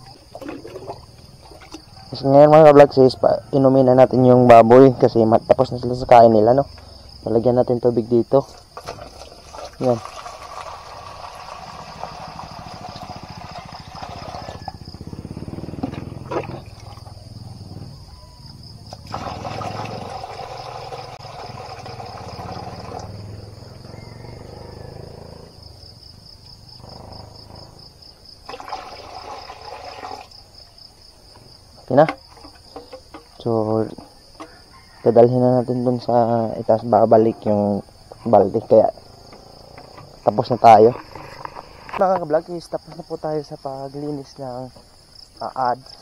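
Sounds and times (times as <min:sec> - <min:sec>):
crickets trilling: 0:00.0 - 0:46.0
water pouring into steel bowl: 0:09.2 - 0:14.5, 0:19.0 - 0:23.1, 0:28.5 - 0:30.3.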